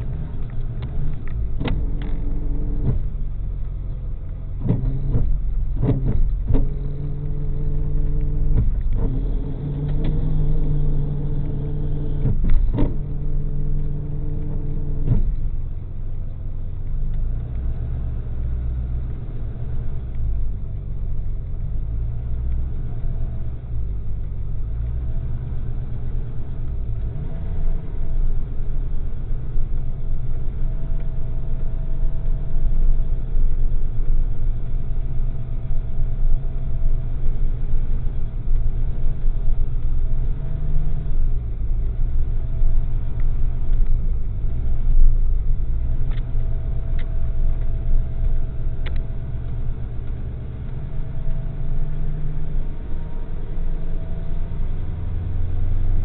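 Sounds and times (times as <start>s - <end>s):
tow truck engine rumble: 0.0s - 56.0s.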